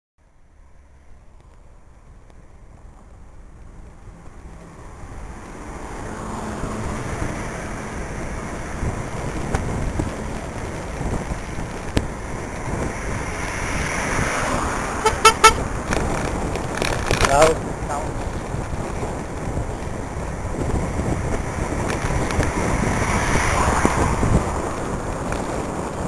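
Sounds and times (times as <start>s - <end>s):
wind rush and road noise: 0.2s - 26.0s
short horn toots: 15.0s - 15.6s.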